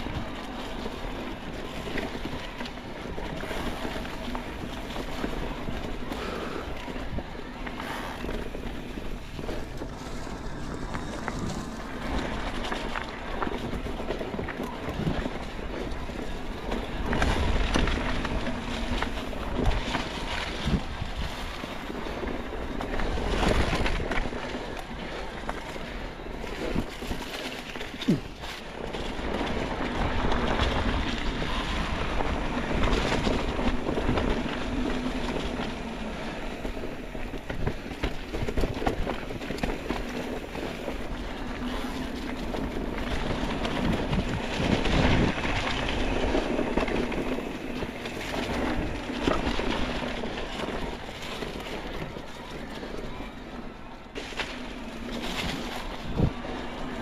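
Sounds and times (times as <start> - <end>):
bike rattling and knocking: 0.0 - 57.0
tyres rolling through dry leaves: 0.0 - 57.0
wind on microphone: 0.0 - 57.0.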